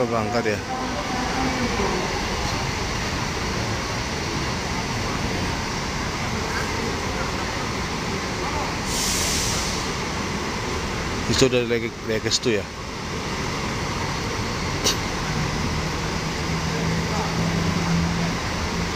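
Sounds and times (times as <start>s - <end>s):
bus diesel engines rumbling: 0.0s - 18.9s
short air hiss: 8.8s - 10.0s.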